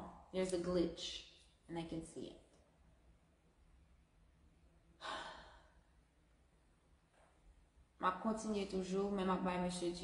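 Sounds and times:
person sighing: 5.0 - 5.8.

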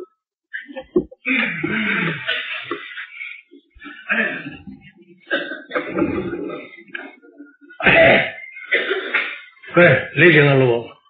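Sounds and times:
elderly man coughing: 3.9 - 7.0, 7.8 - 9.6.

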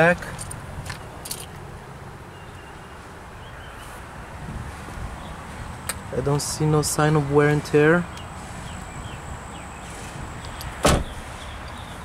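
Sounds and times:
car door shutting thump: 10.8 - 11.2.

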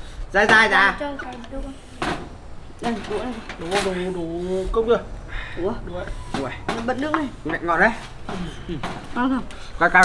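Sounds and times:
people's wordless utterances: 0.0 - 10.0.

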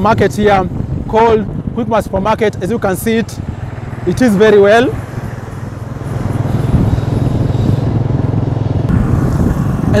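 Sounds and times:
road noise: 0.0 - 10.0
wind noise: 0.0 - 10.0
vehicle engine running: 2.2 - 10.0.

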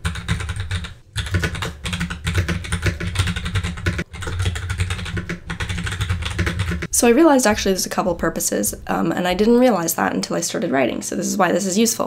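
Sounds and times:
fast typing on keyboard: 0.0 - 9.0.

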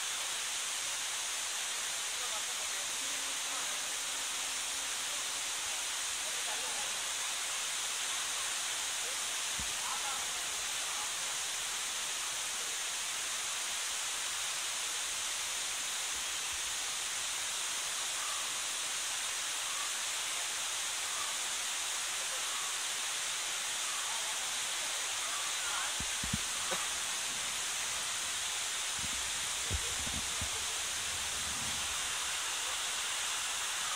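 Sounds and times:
waterfall rushing: 0.0 - 33.9
faint distant voices: 17.8 - 33.9.

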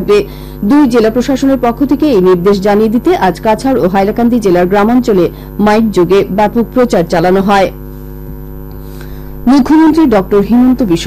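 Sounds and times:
news reader speaking: 0.0 - 7.8, 9.4 - 11.0
electrical mains hum: 0.0 - 11.0.

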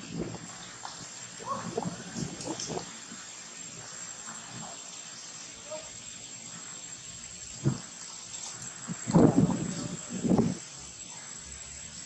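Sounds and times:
macaques calling: 1.4 - 3.0.

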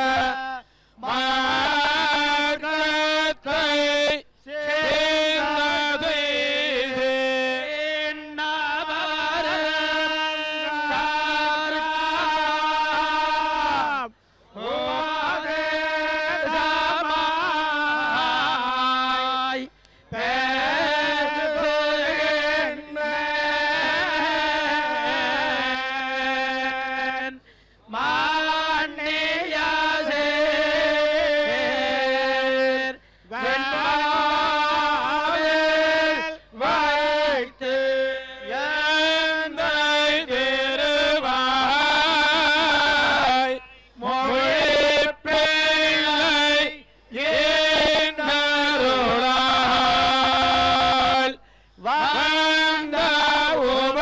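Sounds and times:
men chanting in unison: 0.0 - 54.0.

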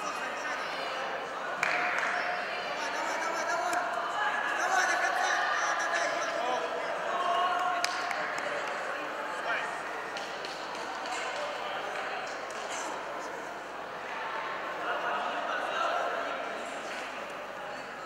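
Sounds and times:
voices shouting and talking: 0.0 - 18.0.

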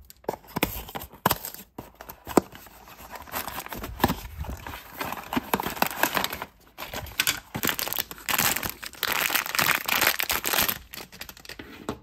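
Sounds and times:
cardboard rustling and tapping: 0.2 - 8.0.

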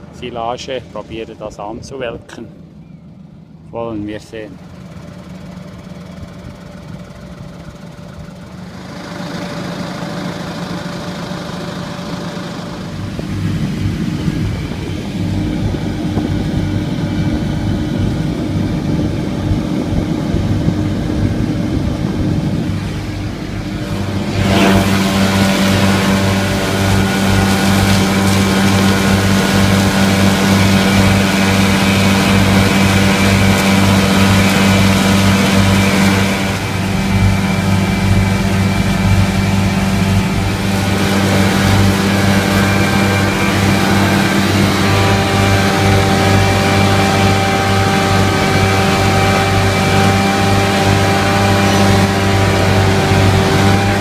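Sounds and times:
tractor engine hum: 0.0 - 54.0.

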